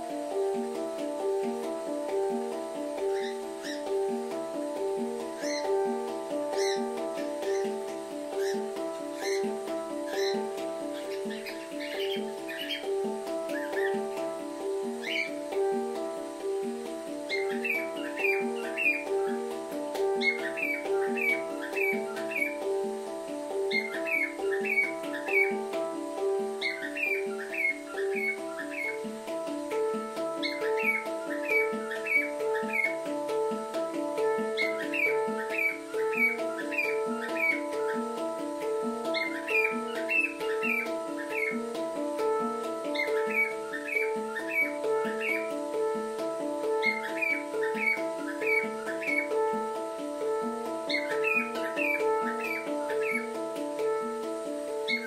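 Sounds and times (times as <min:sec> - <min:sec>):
handpan ringing notes: 0:00.0 - 0:55.0
high bird-like chirps: 0:02.5 - 0:55.0.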